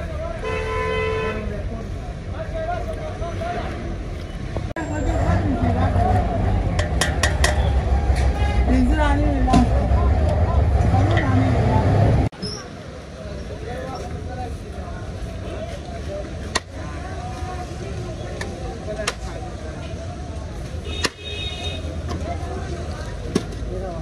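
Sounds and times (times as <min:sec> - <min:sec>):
traffic: 0:00.0 - 0:24.0
people talking: 0:04.8 - 0:24.0.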